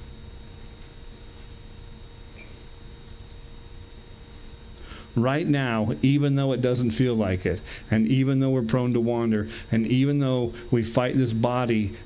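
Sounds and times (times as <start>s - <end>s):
low hum of sound system: 0.0s - 12.0s.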